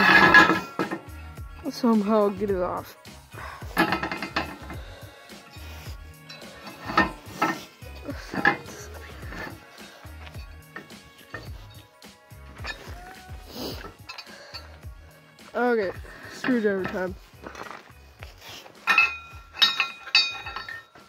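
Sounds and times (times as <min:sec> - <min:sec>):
metal wheel rim knocks and clanks: 0:00.0 - 0:01.1, 0:03.7 - 0:04.9, 0:06.3 - 0:09.6, 0:10.3 - 0:11.8, 0:18.8 - 0:21.0
background music with beat: 0:00.0 - 0:21.0.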